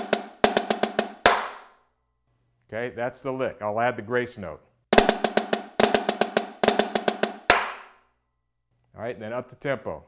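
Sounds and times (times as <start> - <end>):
snare drum rim shot: 0.0 - 1.7, 5.0 - 7.9
snare drum rolls: 0.0 - 1.7, 5.0 - 8.0.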